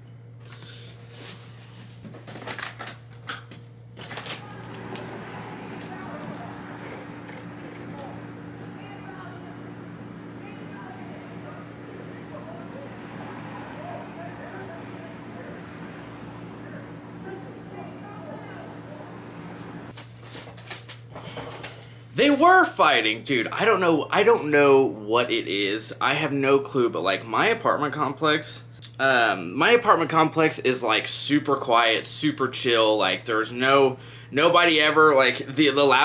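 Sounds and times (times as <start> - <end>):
steady low hum: 0.0 - 36.0
soft rustles and shuffles: 0.7 - 2.4, 19.4 - 22.0
outdoor background noise: 4.0 - 21.9.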